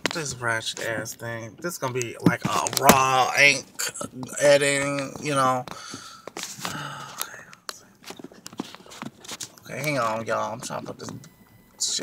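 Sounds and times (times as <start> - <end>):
phone handling clicks and knocks: 1.9 - 3.2
man muttering: 3.7 - 4.6.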